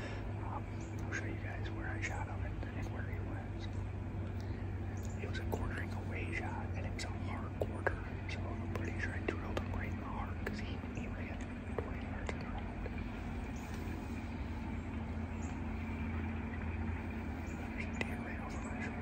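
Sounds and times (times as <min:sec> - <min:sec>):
man whispering: 0:00.0 - 0:03.8, 0:05.0 - 0:14.6, 0:17.2 - 0:19.0
steady low hum: 0:00.0 - 0:19.0.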